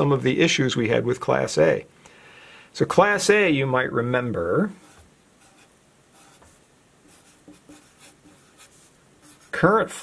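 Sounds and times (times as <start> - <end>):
marker writing on paper: 4.8 - 9.7.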